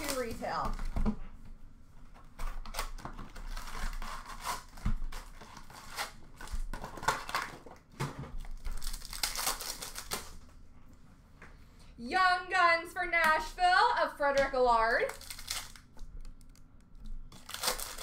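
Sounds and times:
wrappers crinkling: 0:00.0 - 0:00.8, 0:02.7 - 0:10.4, 0:14.9 - 0:16.7, 0:17.3 - 0:18.0
cardboard tearing: 0:02.6 - 0:07.7, 0:08.5 - 0:10.4, 0:15.1 - 0:15.8, 0:17.4 - 0:18.0.

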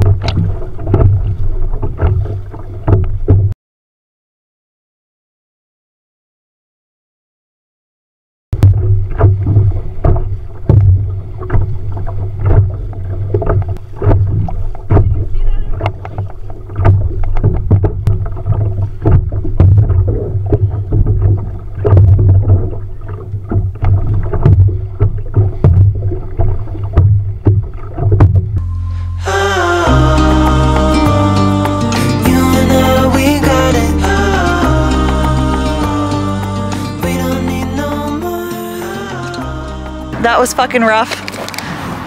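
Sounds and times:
kayak paddle splashes: 0:00.0 - 0:03.5, 0:08.6 - 0:29.7.

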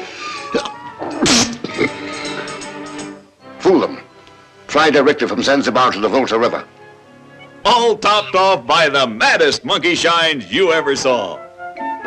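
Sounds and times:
film soundtrack music: 0:00.0 - 0:12.0.

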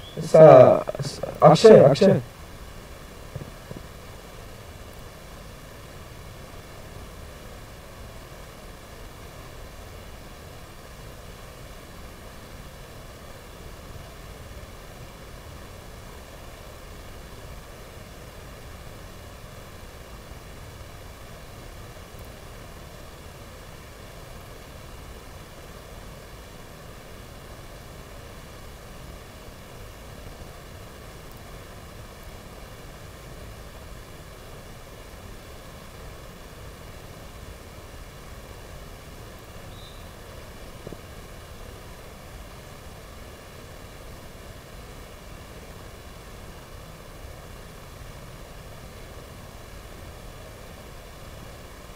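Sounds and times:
steady hiss: 0:00.0 - 0:51.9.

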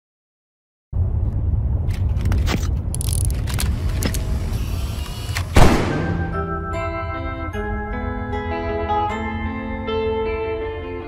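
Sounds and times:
deep steady rumble: 0:01.0 - 0:06.6
sharp clicks: 0:02.8 - 0:05.9.

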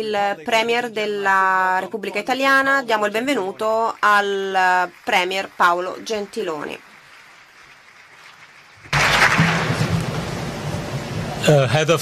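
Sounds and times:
audience applauding: 0:03.2 - 0:11.6.

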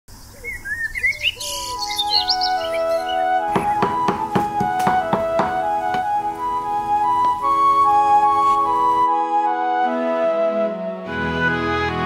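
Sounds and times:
birds chirping: 0:00.1 - 0:09.0
music with long held notes: 0:02.4 - 0:12.0.

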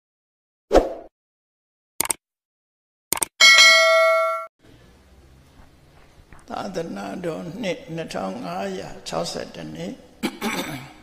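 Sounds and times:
bright notification bell chime: 0:03.4 - 0:04.5.

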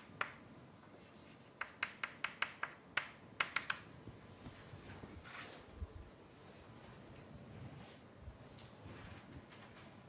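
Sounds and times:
chalk tapping on blackboard: 0:00.0 - 0:00.4, 0:01.0 - 0:03.9.

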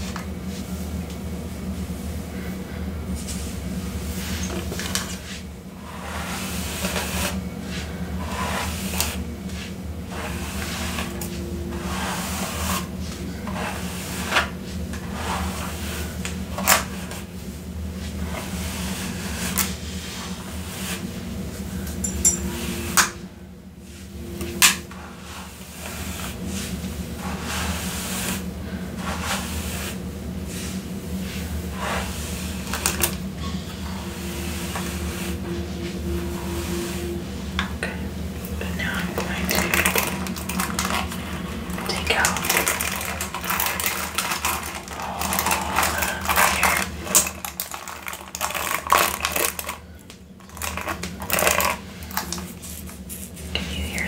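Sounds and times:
low steady hum: 0:00.0 - 0:54.0
hair being brushed: 0:03.1 - 0:16.2, 0:17.0 - 0:21.8, 0:24.9 - 0:37.6.

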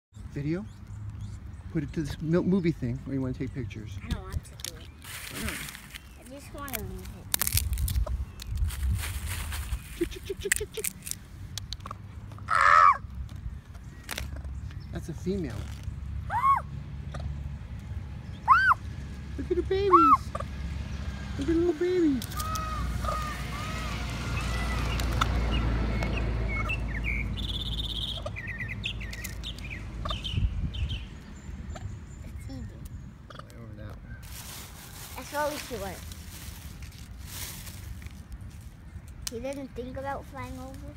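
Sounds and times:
birds chirping: 0:00.1 - 0:40.9
low outdoor rumble: 0:00.2 - 0:40.9
peahen harsh call: 0:12.5 - 0:13.0, 0:22.3 - 0:25.1
peahen clucking: 0:22.2 - 0:25.3, 0:26.5 - 0:30.4.

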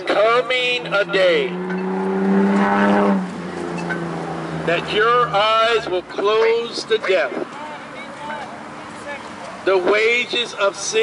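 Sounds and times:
vehicle engine running: 0:00.1 - 0:06.9.

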